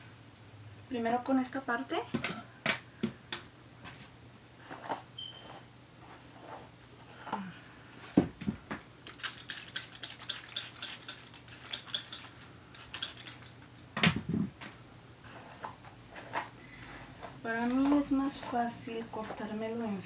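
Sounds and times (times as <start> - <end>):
spray bottle squirts: 9.1 - 13.5.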